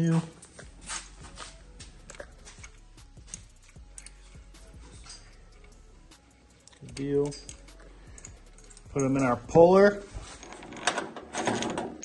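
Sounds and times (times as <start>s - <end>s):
steady low hum: 0.5s - 10.7s
metal bolts clicking: 2.0s - 5.9s, 6.6s - 12.0s.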